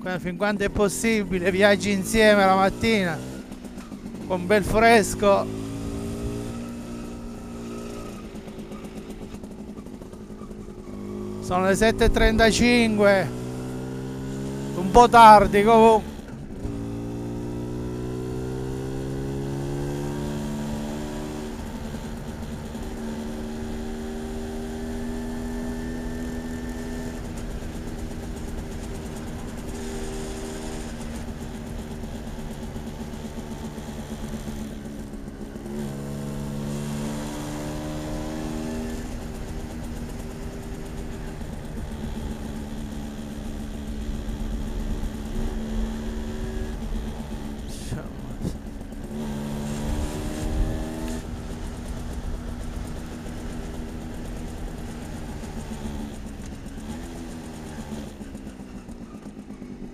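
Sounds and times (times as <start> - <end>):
moped engine revving: 0.0 - 59.9.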